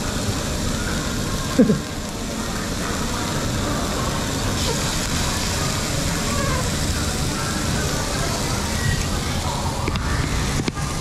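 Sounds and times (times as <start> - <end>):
indistinct chatter of diners: 0.0 - 11.0
steady rushing background noise: 0.0 - 11.0.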